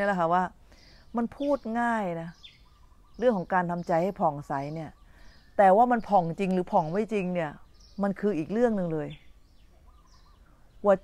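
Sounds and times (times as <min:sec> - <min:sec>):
woman speaking: 0:00.0 - 0:02.4, 0:03.2 - 0:05.0, 0:05.6 - 0:09.2.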